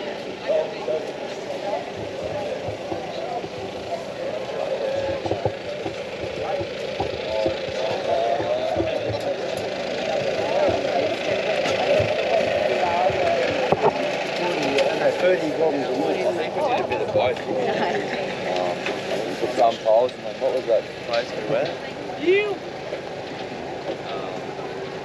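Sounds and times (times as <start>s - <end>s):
low rumbles: 0.0s - 25.0s
outdoor hubbub: 0.0s - 25.0s
people talking in background: 0.0s - 25.0s.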